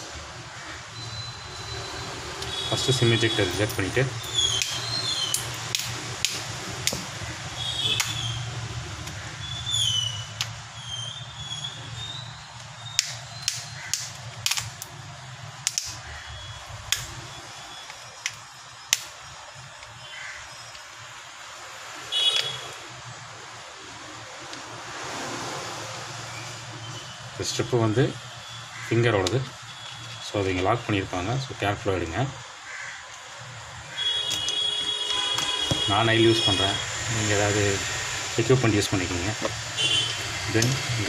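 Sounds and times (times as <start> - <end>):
plastic clips clicking and snapping: 12.9 - 14.9, 15.6 - 16.0.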